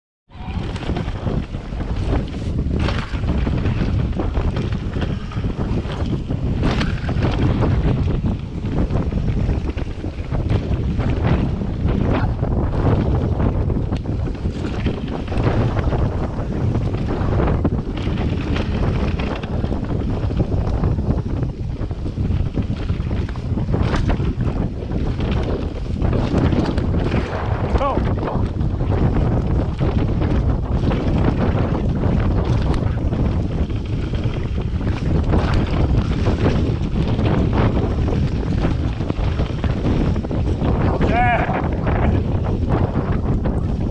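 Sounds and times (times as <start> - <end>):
tyre noise over leaves and earth: 0.3 - 8.2
wind buffeting microphone: 0.3 - 43.9
bike knocks and rattles: 0.4 - 43.9.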